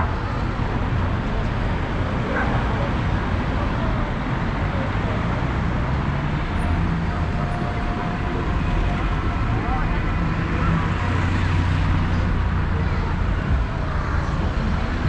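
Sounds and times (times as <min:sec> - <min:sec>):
people's voices: 0:00.0 - 0:15.0.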